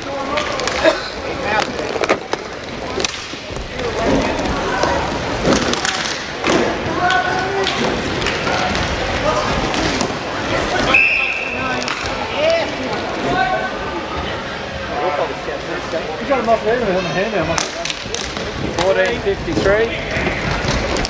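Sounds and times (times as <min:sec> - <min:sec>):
hockey sticks and puck clacking: 0:00.1 - 0:13.0, 0:17.5 - 0:21.0.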